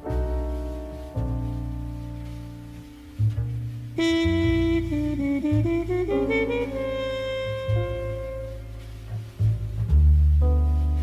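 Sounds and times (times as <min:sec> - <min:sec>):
double bass: 0:00.0 - 0:11.0
piano chords: 0:00.0 - 0:11.0
horn melody: 0:04.0 - 0:09.3.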